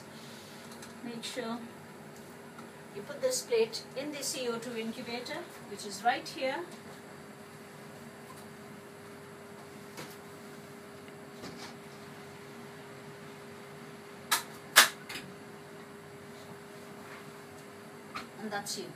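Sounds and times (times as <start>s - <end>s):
steady low hum: 0.0s - 18.9s.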